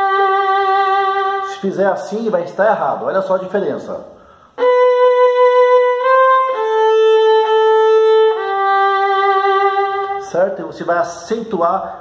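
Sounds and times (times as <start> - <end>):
solo violin playing hymn phrase: 0.0 - 1.7, 4.6 - 10.3.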